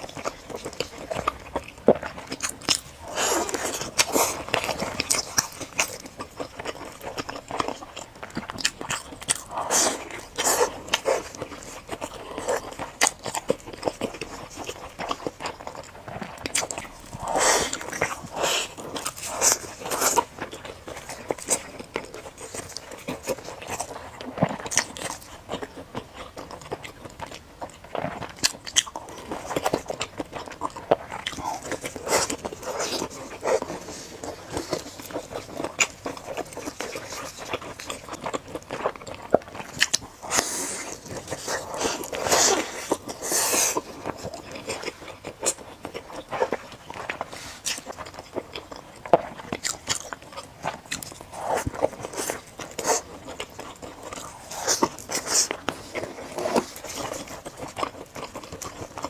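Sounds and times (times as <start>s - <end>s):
person chewing crunchy food: 0.0s - 59.0s.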